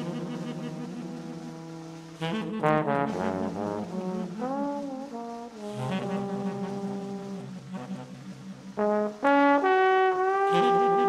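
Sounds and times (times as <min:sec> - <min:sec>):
tenor saxophone: 0:00.0 - 0:11.0
trombone: 0:00.0 - 0:11.0.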